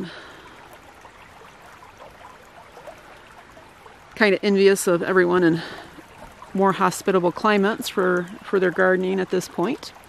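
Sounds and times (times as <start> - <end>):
creek trickling: 0.0 - 10.0.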